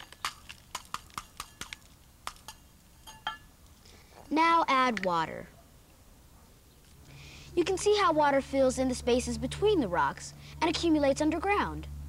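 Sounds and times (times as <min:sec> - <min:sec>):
metallic clink: 0:02.4 - 0:03.5.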